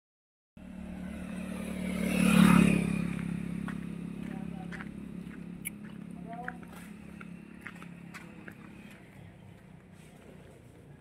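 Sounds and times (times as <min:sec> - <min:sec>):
vehicle engine passing by: 0:00.6 - 0:11.0.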